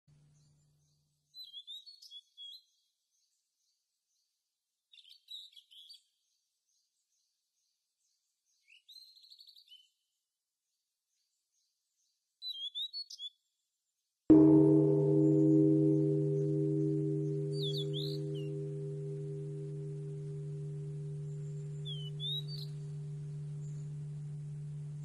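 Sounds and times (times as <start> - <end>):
songbird chirping: 14.3 - 25.0.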